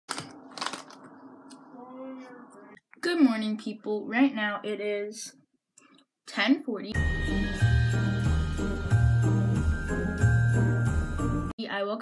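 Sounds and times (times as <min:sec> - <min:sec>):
plastic wrapper crinkling: 0:00.1 - 0:01.6.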